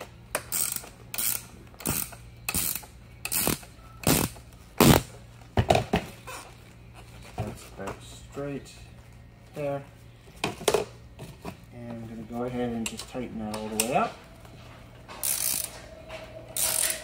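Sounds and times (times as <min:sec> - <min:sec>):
ratcheting wrench clicking: 0:00.3 - 0:05.0, 0:15.2 - 0:15.7, 0:16.6 - 0:17.0.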